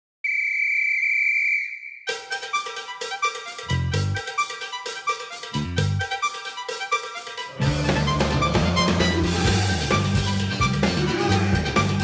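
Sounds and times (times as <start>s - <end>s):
long high whistle blast: 0.2s - 2.6s.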